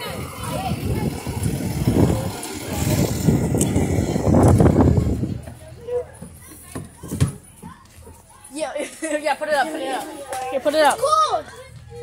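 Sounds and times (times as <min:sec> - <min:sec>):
bus engine rumbling: 0:00.0 - 0:08.3.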